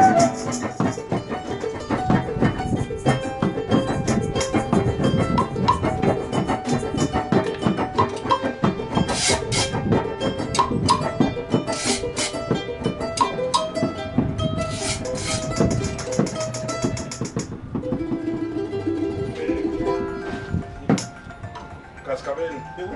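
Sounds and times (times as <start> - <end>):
strummed acoustic guitar: 0.0 - 22.1
drum and hand percussion: 0.0 - 22.3
small high-pitched string instrument: 0.0 - 22.9.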